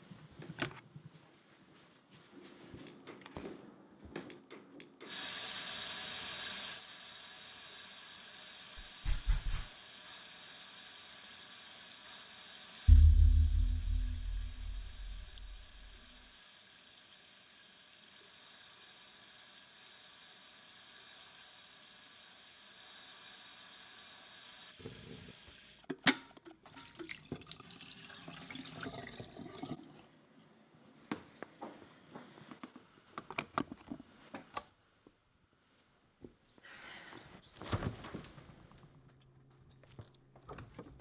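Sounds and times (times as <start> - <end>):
low pulsing rumble: 12.9 - 16.0.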